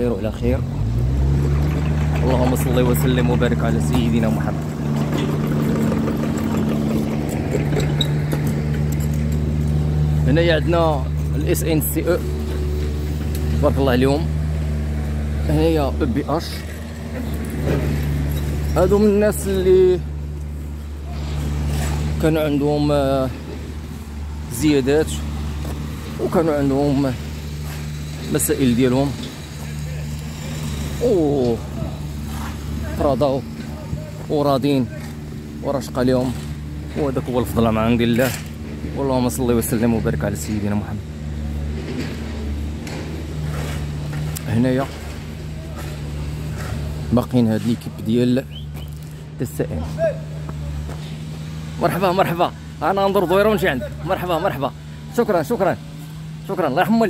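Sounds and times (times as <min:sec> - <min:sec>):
excavator diesel engine running: 0:00.0 - 0:57.0.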